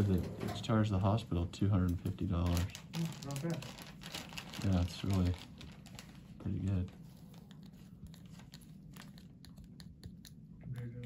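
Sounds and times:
foil lid crinkling: 2.4s - 6.3s.

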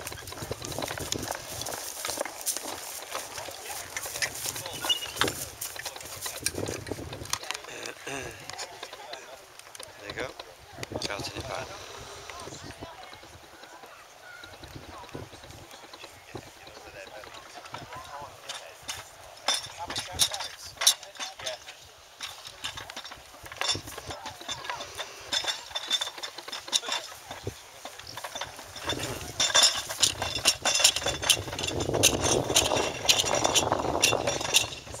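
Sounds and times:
chain and metal fittings clinking: 0.0s - 9.3s, 16.9s - 35.0s
indistinct voices: 0.0s - 35.0s.

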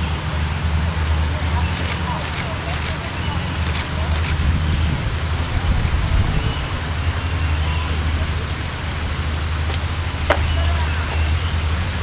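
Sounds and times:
faint distant voices: 0.0s - 12.0s
low rumble: 0.0s - 12.0s.

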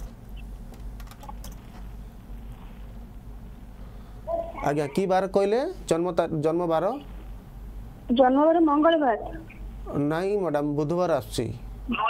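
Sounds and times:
laptop keyboard clicks: 0.0s - 1.7s
steady low hum: 0.0s - 12.0s.

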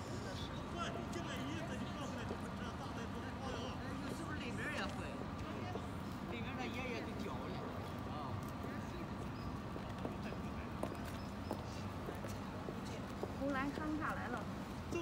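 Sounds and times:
street background noise: 0.0s - 15.0s.

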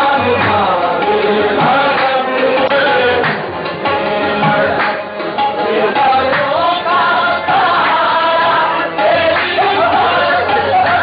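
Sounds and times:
male voices singing in chorus: 0.0s - 11.0s
music: 0.0s - 11.0s.

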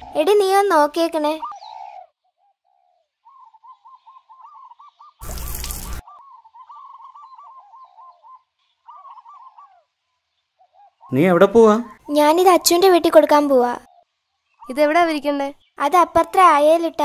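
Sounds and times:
bird singing: 0.0s - 17.0s.

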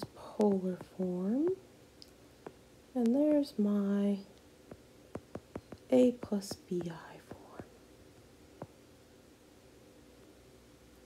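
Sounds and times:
low hiss: 0.0s - 11.0s
stylus tapping on glass screen: 4.7s - 7.4s.

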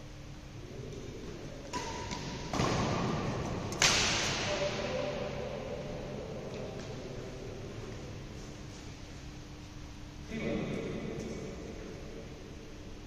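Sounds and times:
racket hitting shuttlecock: 1.6s - 5.1s.

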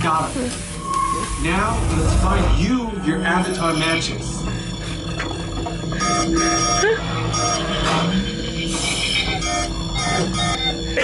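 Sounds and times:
steady electronic tone: 0.7s - 11.0s.

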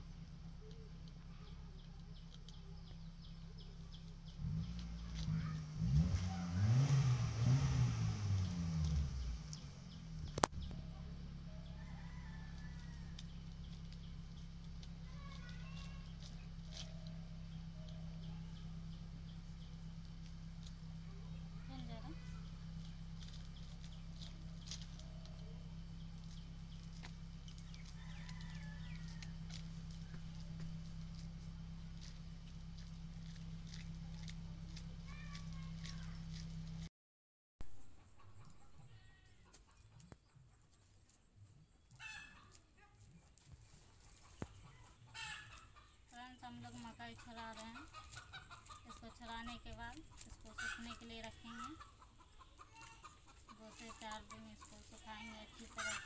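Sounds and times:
maize kernels clicking: 0.2s - 3.0s, 3.7s - 7.1s, 8.0s - 36.9s, 41.9s - 52.0s, 52.6s - 56.0s.

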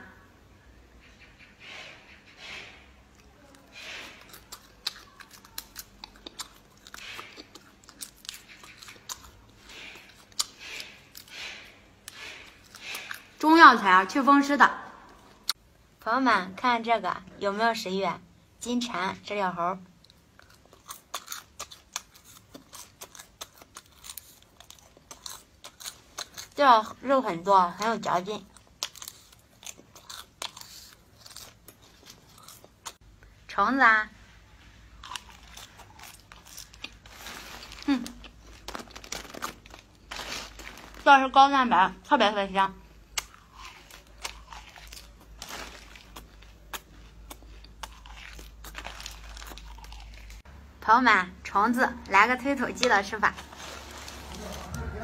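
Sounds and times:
person chewing crunchy food: 3.1s - 13.4s, 20.0s - 27.0s, 27.8s - 33.2s, 34.8s - 41.0s, 42.9s - 50.5s, 52.8s - 55.0s.

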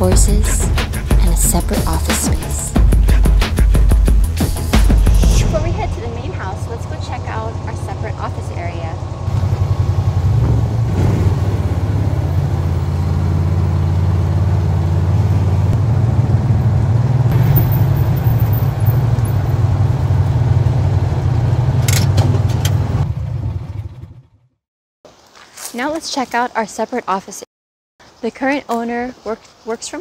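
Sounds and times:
utility vehicle engine droning: 0.0s - 24.6s.

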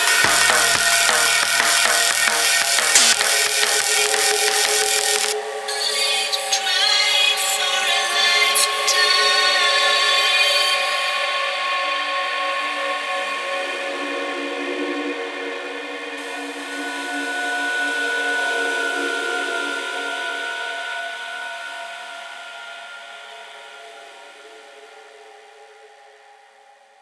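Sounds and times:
synthesizer pad chords: 0.0s - 5.7s.

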